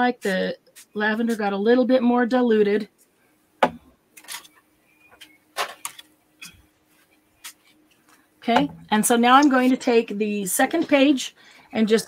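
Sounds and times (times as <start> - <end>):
bottle knock: 3.6 - 3.9, 8.5 - 8.9.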